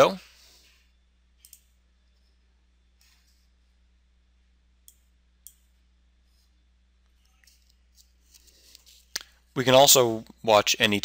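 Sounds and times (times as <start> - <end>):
computer mouse clicks: 1.4 - 2.3.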